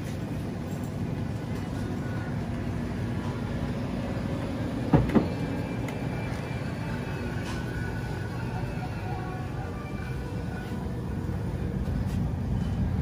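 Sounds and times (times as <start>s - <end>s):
supermarket background rumble: 0.0s - 13.0s.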